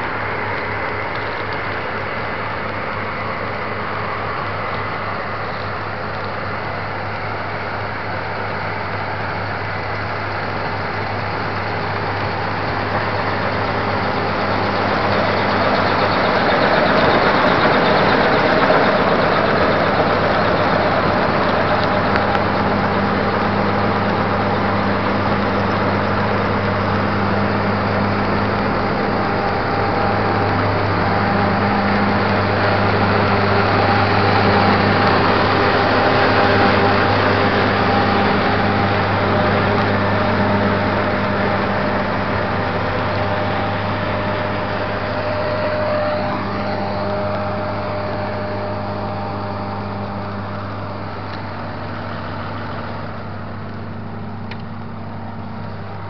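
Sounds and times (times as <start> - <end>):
combine harvester machine drone: 0.0 - 56.0.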